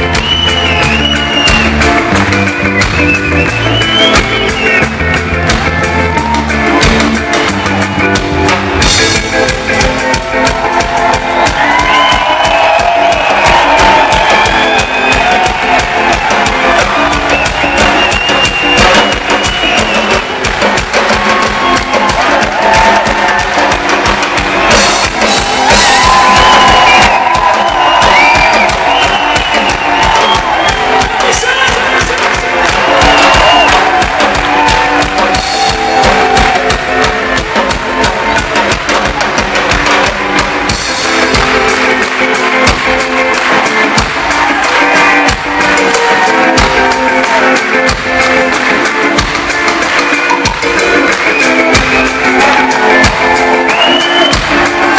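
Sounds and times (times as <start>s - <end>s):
drum kit beating: 0.0s - 54.9s
live rock band playing: 0.0s - 54.9s.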